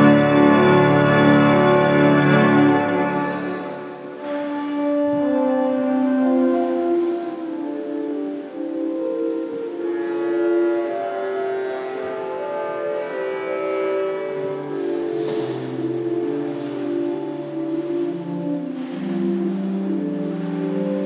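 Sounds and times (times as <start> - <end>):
pipe organ playing chords: 0.0 - 21.0.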